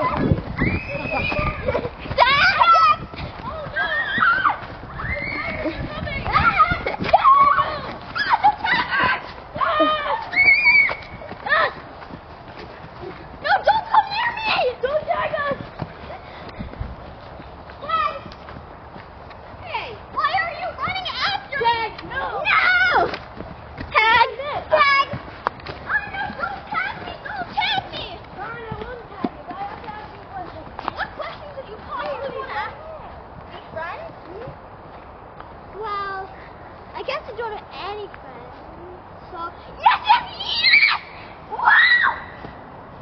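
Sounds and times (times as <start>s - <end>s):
children shouting and squealing: 0.0s - 18.6s, 19.5s - 33.8s, 38.6s - 42.7s.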